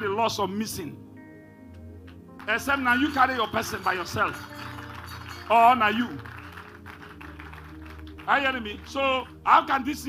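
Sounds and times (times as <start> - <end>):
soft held-note background music: 0.0 - 10.0.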